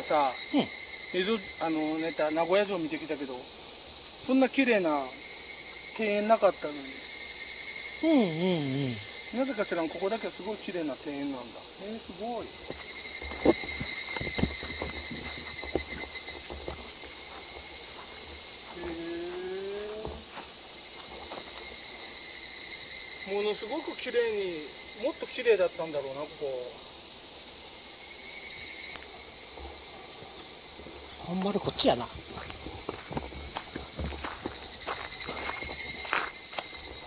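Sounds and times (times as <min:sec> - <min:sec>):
voices: 0:00.0 - 0:26.9, 0:31.1 - 0:37.0
high-pitched insects shrilling: 0:00.0 - 0:37.0.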